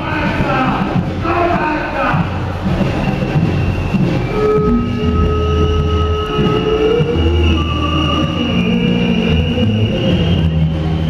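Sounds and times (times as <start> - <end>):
rail wheels squealing: 2.6 - 11.0.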